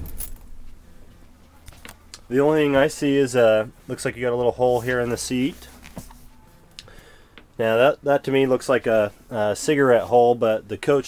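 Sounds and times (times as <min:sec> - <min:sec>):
light clicks and rustles: 0:00.0 - 0:02.3
faint low hum: 0:00.0 - 0:11.0.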